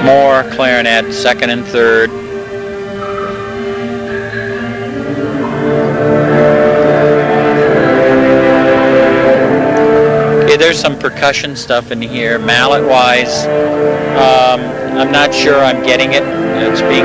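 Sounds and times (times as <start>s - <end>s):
wind ensemble sustained chords: 0.0s - 17.0s.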